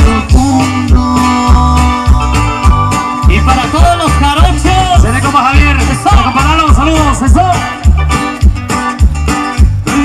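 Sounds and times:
bass and drum beat: 0.0s - 10.0s
live band playing amplified music: 0.0s - 10.0s.

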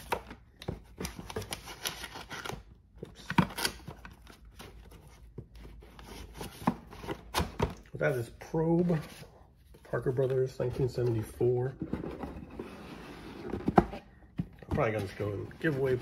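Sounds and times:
paper and cardboard rustling: 8.5s - 16.0s.

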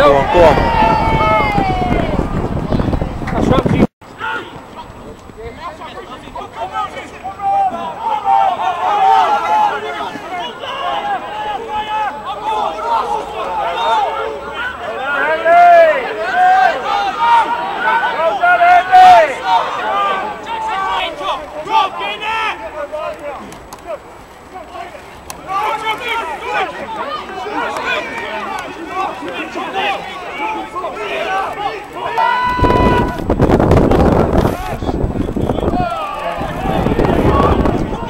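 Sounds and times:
people shouting: 0.0s - 2.4s, 4.2s - 4.6s, 6.4s - 33.3s, 34.4s - 38.0s.

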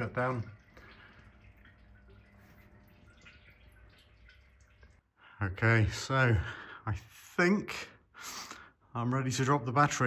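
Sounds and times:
coolant dripping into plastic bucket: 0.0s - 5.2s.

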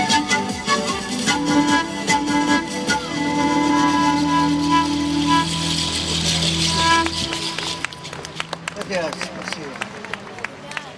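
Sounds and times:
pan flute music: 0.0s - 9.0s
street noise: 0.0s - 10.9s.

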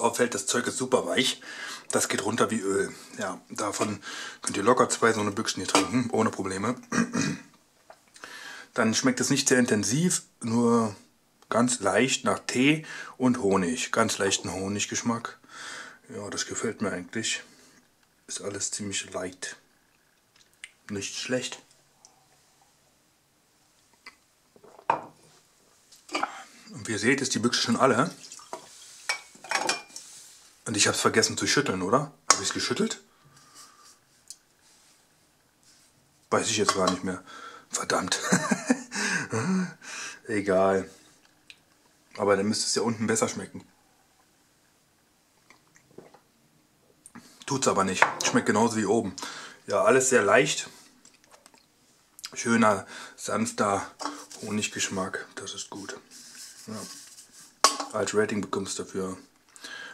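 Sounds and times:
drink trickling into glass mug: 28.2s - 30.0s
hand rustling on can: 55.7s - 57.6s.

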